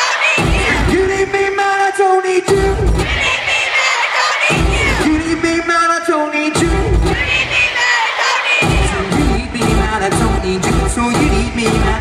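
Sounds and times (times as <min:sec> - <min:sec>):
crowd cheering and screaming: 0:00.0 - 0:01.5, 0:02.8 - 0:05.6, 0:06.8 - 0:09.6
loud live concert music: 0:00.0 - 0:12.0.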